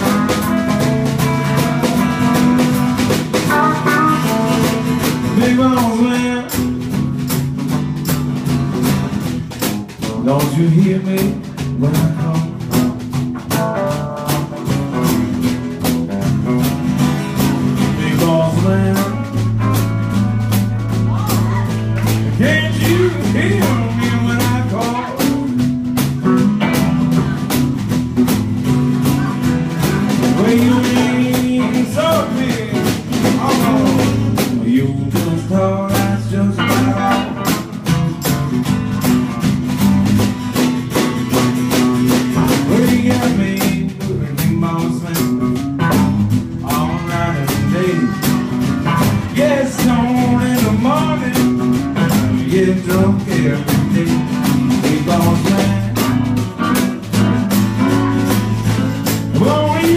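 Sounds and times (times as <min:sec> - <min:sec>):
drum kit steady beat: 0:00.0 - 0:59.9
electric guitar: 0:00.0 - 0:59.9
strummed acoustic guitar: 0:00.0 - 0:59.9.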